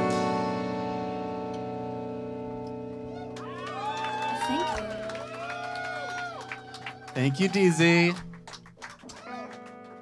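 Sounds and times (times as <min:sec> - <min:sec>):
electric guitar and bass chord ringing: 0:00.0 - 0:03.0.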